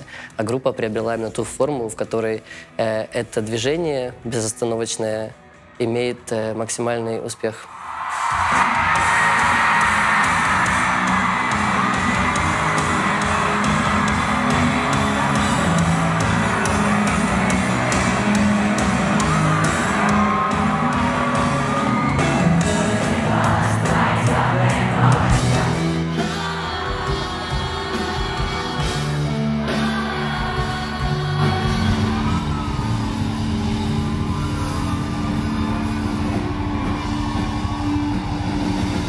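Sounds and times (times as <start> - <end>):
crowd yelling and cheering: 7.3 - 39.0
rock band playing: 8.2 - 39.0
person singing: 22.2 - 32.6.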